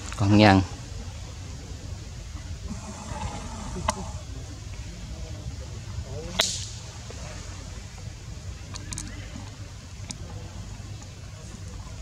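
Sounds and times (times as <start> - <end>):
sharp crack: 6.2 - 6.9.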